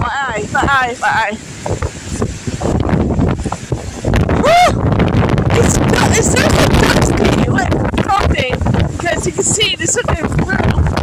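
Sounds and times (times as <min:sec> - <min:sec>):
wind buffeting microphone: 0:00.0 - 0:11.0
short wordless cry: 0:04.4 - 0:04.8.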